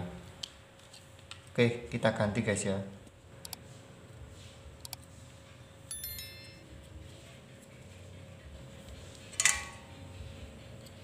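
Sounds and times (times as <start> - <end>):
faint steady hum: 0.0 - 11.0
metallic chime-like rings: 5.9 - 6.8.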